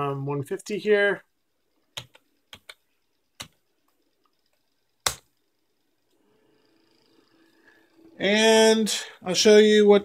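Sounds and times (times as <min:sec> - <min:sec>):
faint hum: 0:00.0 - 0:10.0.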